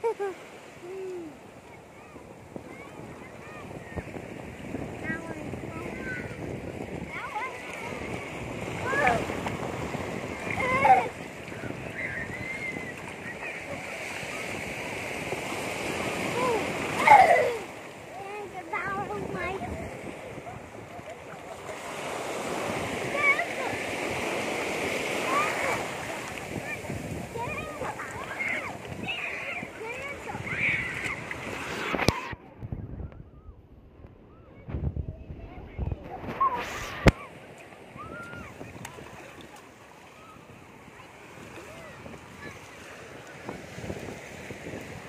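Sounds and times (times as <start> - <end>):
small waves washing: 0.0 - 45.0.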